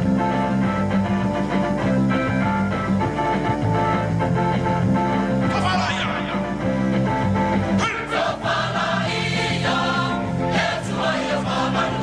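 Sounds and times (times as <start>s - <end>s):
many voices singing in chorus: 7.8s - 12.0s.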